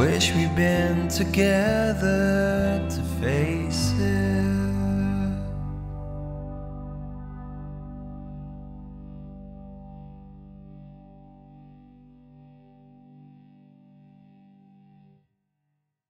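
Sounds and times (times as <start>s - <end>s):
electric guitar chord ringing: 0.0s - 15.2s.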